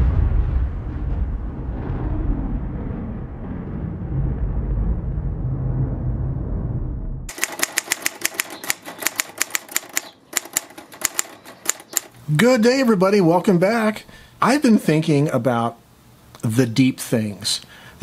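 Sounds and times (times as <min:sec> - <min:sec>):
low steady rumble: 0:00.0 - 0:07.3
typewriter keystrokes: 0:07.3 - 0:12.2.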